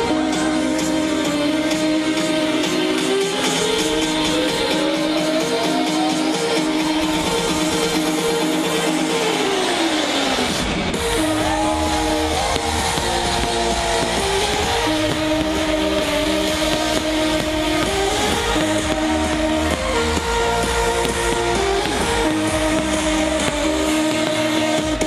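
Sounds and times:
electronic dance music: 0.0 - 25.0.

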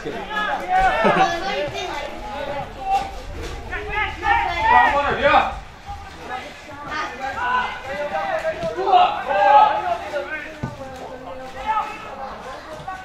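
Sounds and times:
indistinct voices talking: 0.0 - 13.0.

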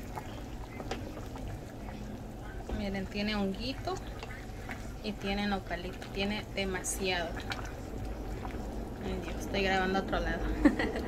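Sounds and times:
stew bubbling in a pot: 0.0 - 11.0.

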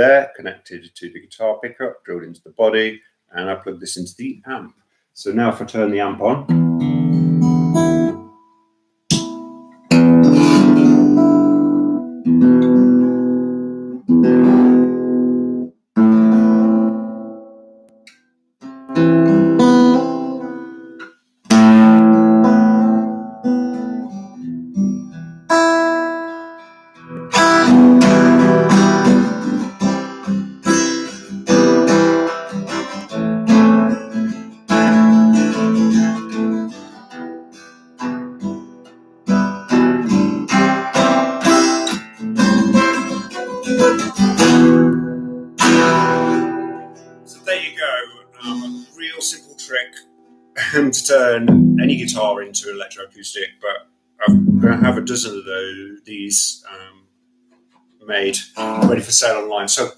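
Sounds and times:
amplified acoustic guitar strumming: 6.5 - 52.9, 54.2 - 55.4, 58.6 - 59.6.

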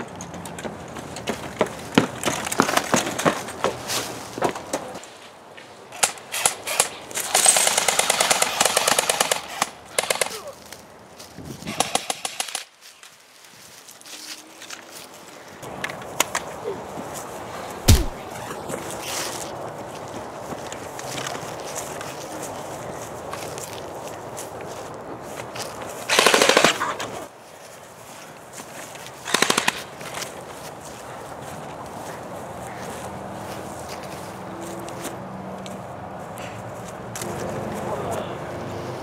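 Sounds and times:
footsteps running on grass: 17.1 - 26.1, 27.4 - 35.2
automatic gunfire bursts: 17.9 - 18.2, 26.1 - 26.9, 29.3 - 29.9
heavy thump: 17.9 - 18.2.

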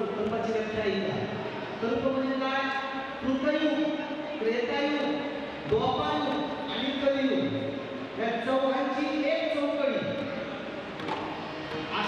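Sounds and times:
man speaking through microphone: 0.0 - 10.8.

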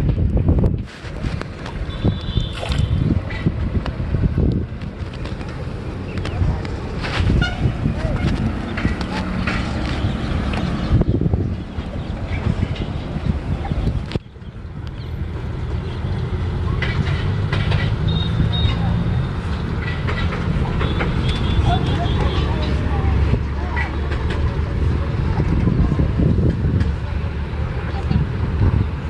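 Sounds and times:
wind buffeting a microphone: 0.0 - 29.0.

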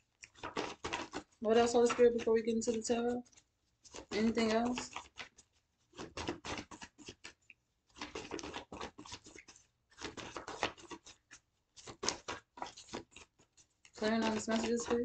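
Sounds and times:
cards being shuffled: 0.1 - 15.0.

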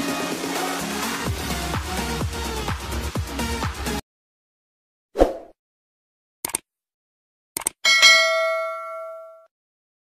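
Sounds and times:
metallic ding: 7.8 - 9.5.

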